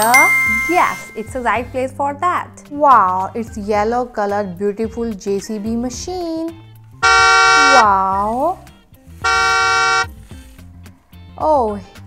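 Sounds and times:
bright horn toot: 7.0 - 7.8, 9.2 - 10.1.

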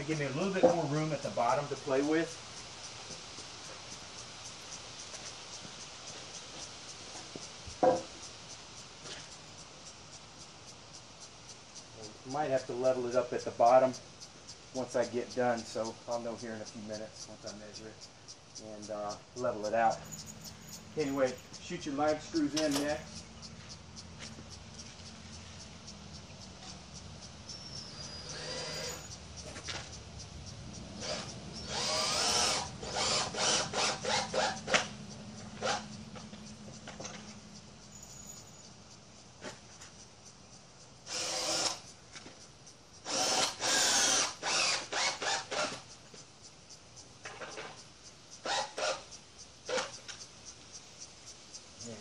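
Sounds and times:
power drill driving screw into wood: 28.0 - 29.1, 31.0 - 34.9, 35.6 - 35.9, 41.1 - 41.9, 43.0 - 45.9, 48.4 - 49.1, 49.7 - 50.0.

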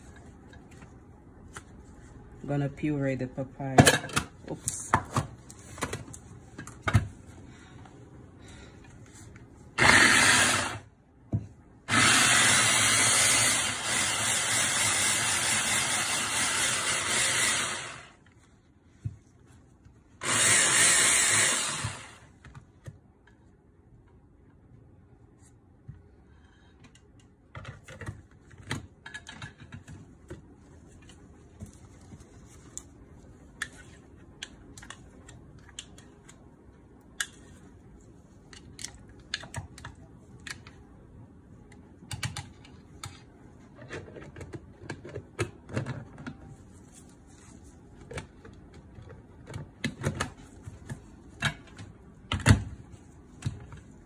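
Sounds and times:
stick blender motor: 9.8 - 10.8, 11.9 - 18.2, 20.2 - 22.3.

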